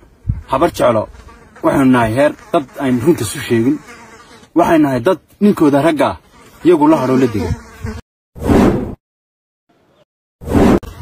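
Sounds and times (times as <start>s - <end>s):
man speaking: 0.5s - 3.8s, 4.6s - 7.6s.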